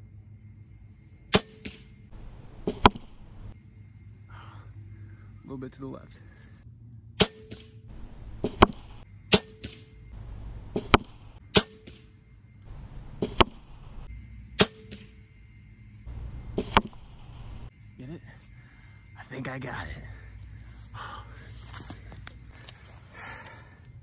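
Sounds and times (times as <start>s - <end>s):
bolt striking target: 1.3s - 1.9s, 2.5s - 3.5s, 7.2s - 10.0s, 10.6s - 12.1s, 12.7s - 15.2s, 16.4s - 17.3s
crossbow firing: 1.3s - 3.5s, 7.2s - 15.2s, 16.1s - 17.7s.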